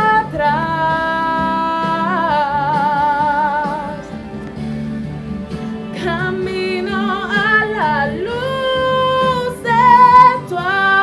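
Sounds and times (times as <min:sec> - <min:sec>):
woman singing worship song: 0:00.0 - 0:04.2, 0:05.9 - 0:11.0
instrumental accompaniment: 0:00.0 - 0:11.0.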